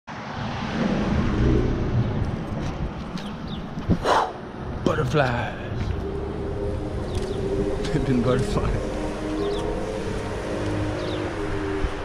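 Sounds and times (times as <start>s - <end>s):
car passing by: 0.1s - 3.0s, 5.3s - 12.0s
street traffic: 0.1s - 12.0s.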